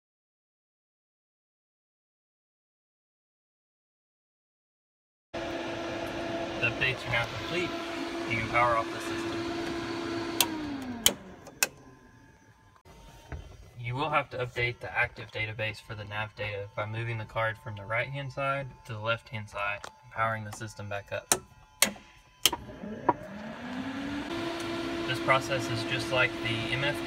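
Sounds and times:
avionics hum: 5.4 - 27.0
electric whine rising in pitch: 5.4 - 27.0.

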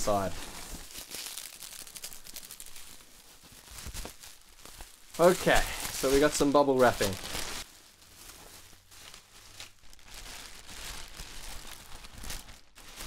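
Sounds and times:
bubble wrap crinkling: 0.0 - 13.0
plastic bag rustling: 0.0 - 13.0.

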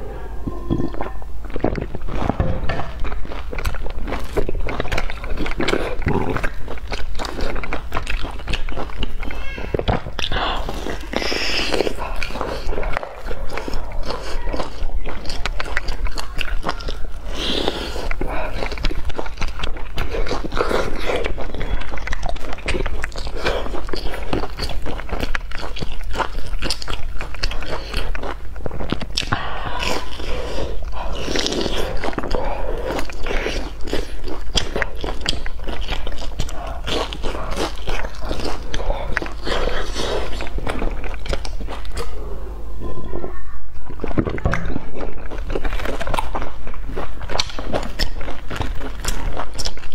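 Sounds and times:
wet chewing: 0.0 - 49.9
crunching on fried food: 0.8 - 42.2, 43.9 - 49.9.

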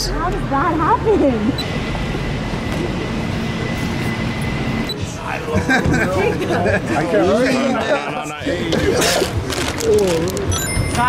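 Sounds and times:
street traffic rumble: 0.0 - 11.0
thin high whine: 1.5 - 5.7.

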